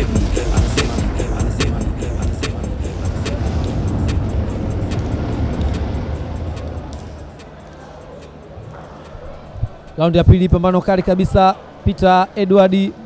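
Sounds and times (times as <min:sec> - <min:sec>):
hip-hop track over loudspeakers: 0:00.0 - 0:10.7.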